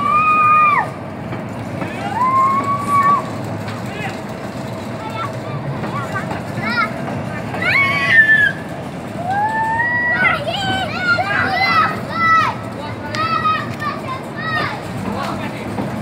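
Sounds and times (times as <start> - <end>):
children shouting: 0.0 - 1.0, 1.9 - 3.4, 5.0 - 14.9
steady background rumble: 0.0 - 16.0.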